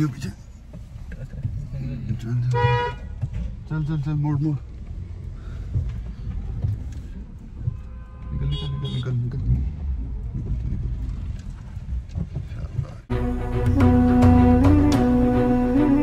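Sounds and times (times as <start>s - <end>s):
engine rumble: 0.0s - 16.0s
tyres on road: 0.0s - 16.0s.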